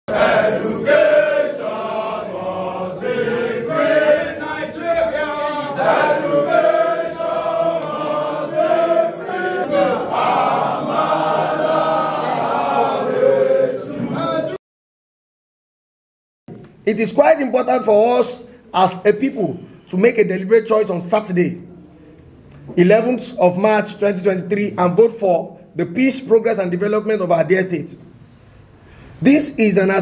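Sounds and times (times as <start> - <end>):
men singing in unison: 0.1 - 14.6.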